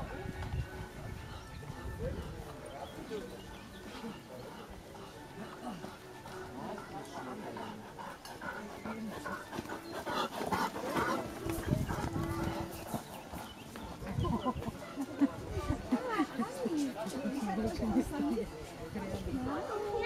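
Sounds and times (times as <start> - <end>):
distant voices chattering: 0.0 - 20.0.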